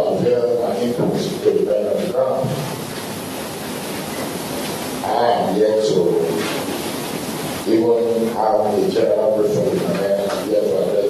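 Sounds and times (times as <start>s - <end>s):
man speaking: 0.0s - 2.7s, 5.0s - 6.4s, 7.7s - 11.0s
room noise hiss: 0.0s - 11.0s.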